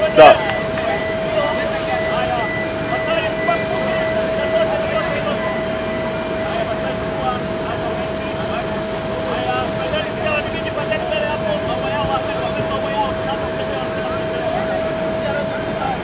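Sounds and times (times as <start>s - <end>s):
crowd chatter: 0.0s - 16.0s
jet turbine whine: 0.0s - 16.0s.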